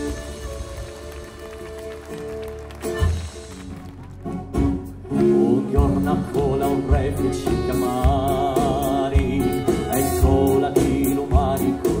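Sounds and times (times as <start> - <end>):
folk band playing instrumental: 0.0 - 12.0.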